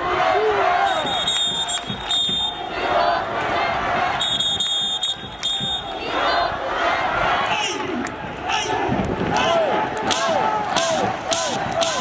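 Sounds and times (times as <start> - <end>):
crowd chanting a cheer: 0.0 - 12.0
high whistle-like tone: 0.8 - 2.7, 4.2 - 6.0.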